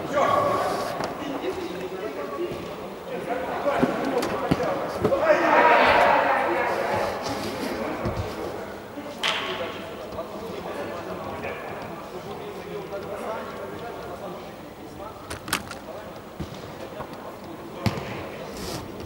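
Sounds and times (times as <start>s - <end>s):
distant voices talking: 0.0s - 19.0s.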